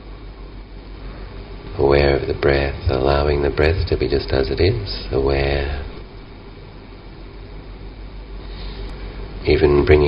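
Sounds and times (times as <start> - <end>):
faint hum: 0.0 - 10.0
low even hiss: 0.0 - 10.0.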